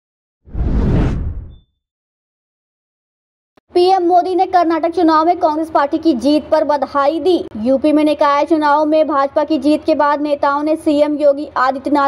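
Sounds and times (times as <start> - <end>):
whoosh sound effect: 0.5 - 1.6.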